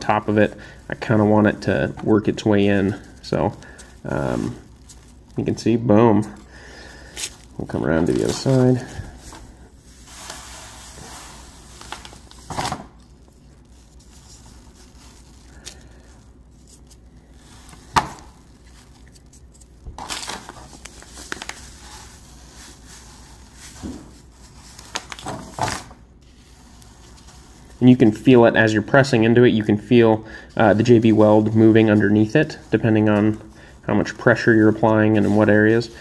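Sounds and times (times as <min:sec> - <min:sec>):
bag rustling and crinkling: 0:00.0 - 0:36.0.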